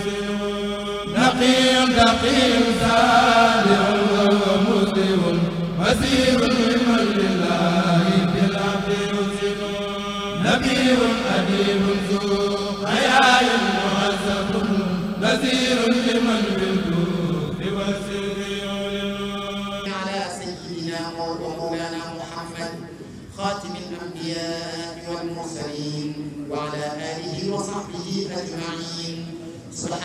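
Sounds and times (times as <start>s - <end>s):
person chanting a devotional poem: 0.0s - 30.0s.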